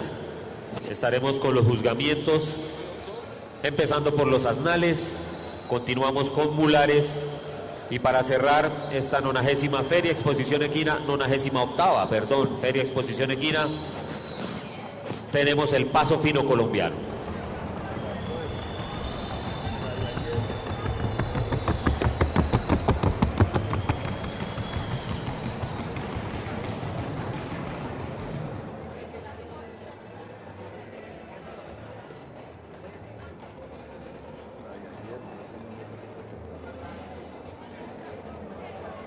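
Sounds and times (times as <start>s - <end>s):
low background murmur: 0.0s - 39.0s
horse hoofbeats: 18.7s - 28.6s.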